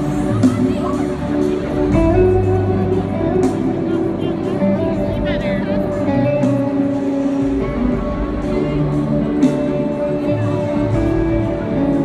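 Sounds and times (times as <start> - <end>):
live pop band music: 0.0 - 12.0.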